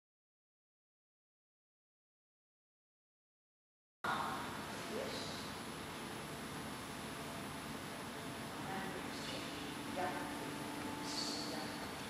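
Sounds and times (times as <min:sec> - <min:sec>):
background hiss: 0:04.1 - 0:12.0
faint low hum: 0:04.1 - 0:12.0.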